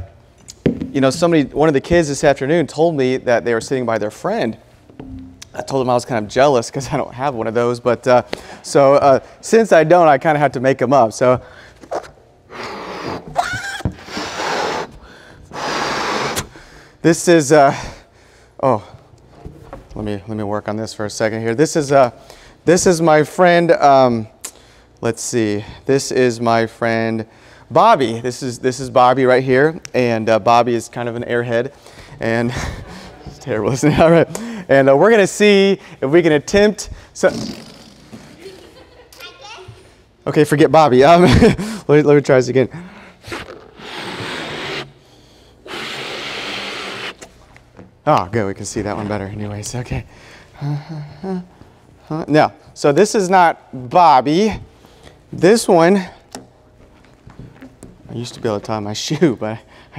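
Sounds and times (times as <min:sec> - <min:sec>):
balloon being blown up: 0:11.9 - 0:16.6, 0:37.3 - 0:38.4, 0:43.2 - 0:45.0, 0:45.6 - 0:47.4.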